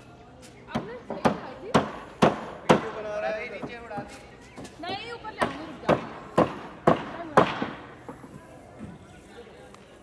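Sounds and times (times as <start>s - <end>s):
faint voices: 0.0s - 10.0s.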